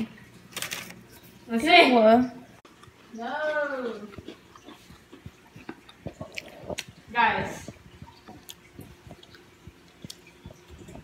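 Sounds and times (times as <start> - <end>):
person chewing cookie: 3.8 - 7.1, 7.7 - 11.0
mouth clicks: 4.1 - 11.0.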